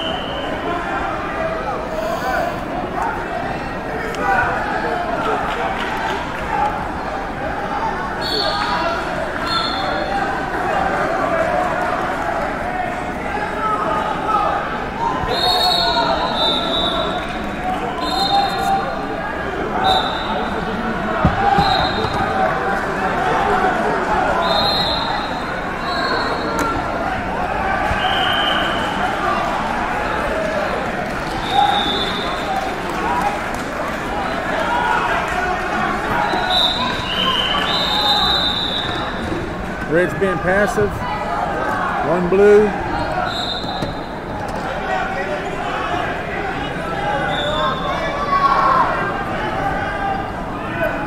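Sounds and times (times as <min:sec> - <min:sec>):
murmur of many voices: 0:00.0 - 0:51.0.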